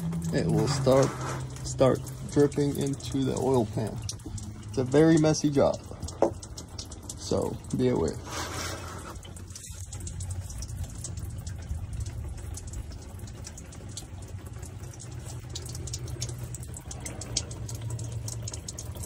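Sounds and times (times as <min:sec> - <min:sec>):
low hum: 0:00.0 - 0:05.0
fuel dripping into a plastic pan: 0:00.0 - 0:19.0.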